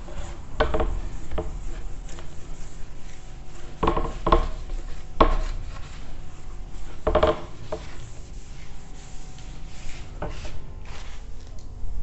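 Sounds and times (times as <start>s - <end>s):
duster rubbing on whiteboard: 0.0s - 11.5s.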